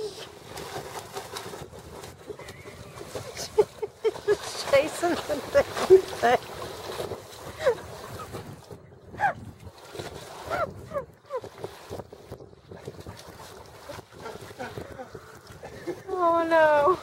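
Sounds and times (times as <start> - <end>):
dog paddling in water: 0.0 - 17.0
wind on microphone: 0.0 - 17.0.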